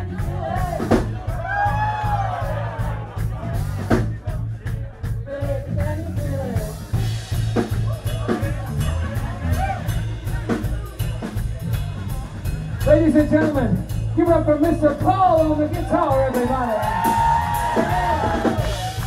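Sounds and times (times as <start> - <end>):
bass guitar: 0.0 - 19.0
drum kit: 0.0 - 19.0.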